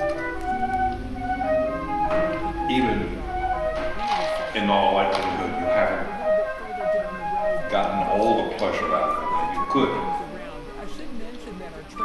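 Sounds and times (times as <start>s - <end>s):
flute playing slow melody: 0.0s - 10.6s.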